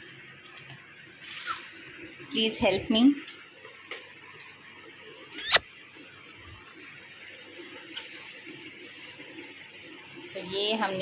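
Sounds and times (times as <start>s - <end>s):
squeaky scrape: 5.4s - 5.6s.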